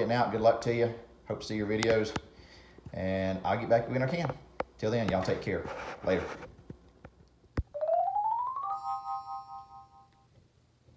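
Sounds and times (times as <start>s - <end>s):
musical outro jingle: 7.8s - 10.2s.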